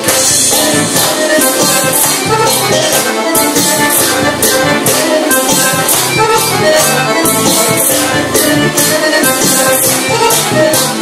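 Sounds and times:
accordion melody: 0.0 - 11.0.

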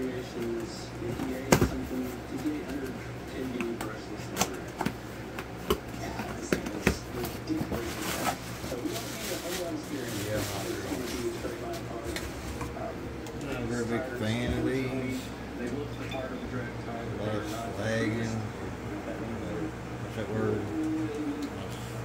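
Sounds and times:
plastic wrapping rustling: 7.2 - 12.6.

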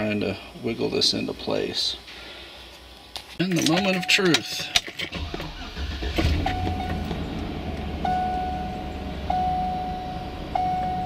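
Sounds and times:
dashboard warning chime: 3.8 - 4.8, 6.4 - 11.0
car engine starting and idling: 4.9 - 11.0.

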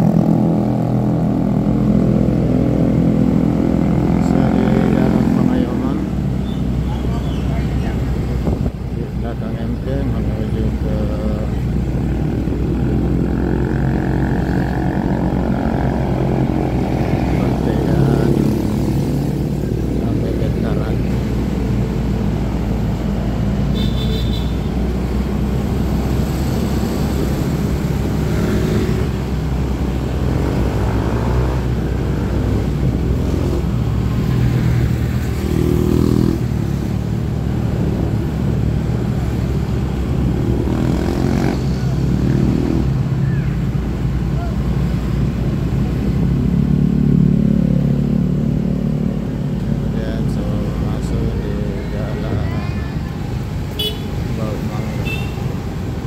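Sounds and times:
vehicles passing: 0.0 - 56.0
wind rumble: 7.8 - 9.6
motorcycle engine: 9.7 - 56.0.

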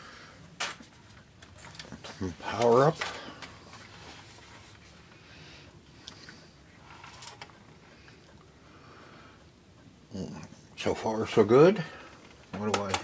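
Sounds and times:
soft handling noises: 0.5 - 8.6.

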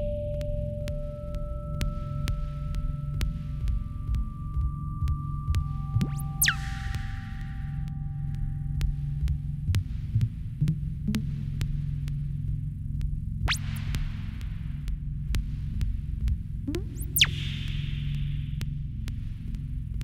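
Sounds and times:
low throbbing electronic hum: 0.0 - 20.0
whistle-like rising sweep: 6.0 - 7.4, 17.0 - 17.9.

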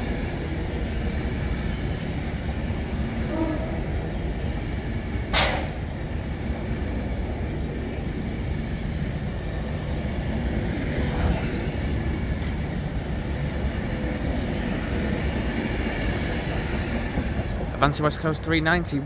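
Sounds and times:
train wheels rumbling: 0.0 - 19.0.

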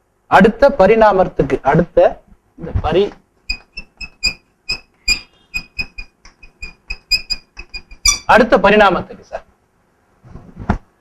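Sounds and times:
chalk squeaking on blackboard: 3.5 - 8.4.

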